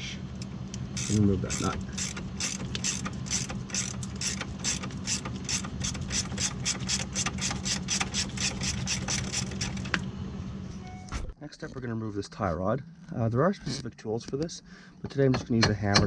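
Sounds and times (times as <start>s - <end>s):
ratcheting wrench clicking: 1.0s - 9.8s.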